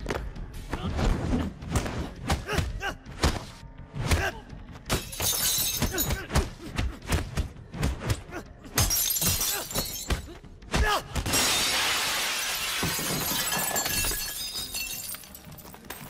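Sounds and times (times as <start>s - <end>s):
glass pane smashing: 4.9s - 6.1s, 8.8s - 10.2s, 11.3s - 16.0s
glass shards tinkling: 5.0s - 6.2s, 8.8s - 10.2s, 12.5s - 16.0s.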